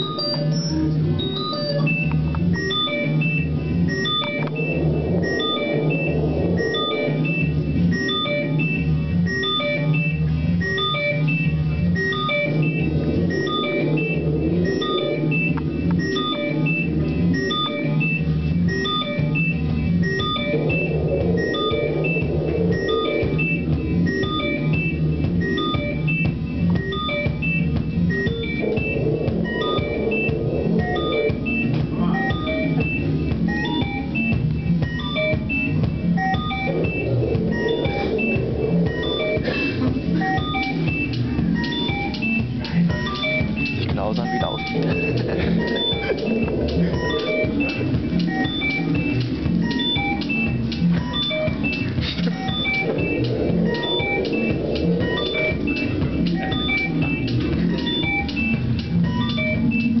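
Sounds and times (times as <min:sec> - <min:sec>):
mid-range synth layer: 0:00.0 - 1:00.0
pulsing synth bass line: 0:00.0 - 1:00.0.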